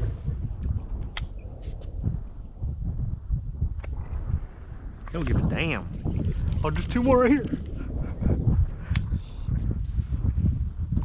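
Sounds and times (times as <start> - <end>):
wind buffeting microphone: 0.0 - 11.0
sharp click: 1.1 - 1.4.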